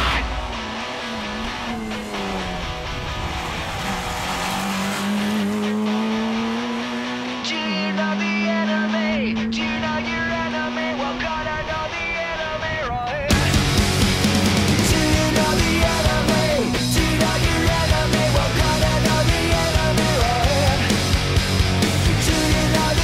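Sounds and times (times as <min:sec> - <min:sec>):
car engine running hard: 0:00.0 - 0:11.8, 0:13.3 - 0:23.0.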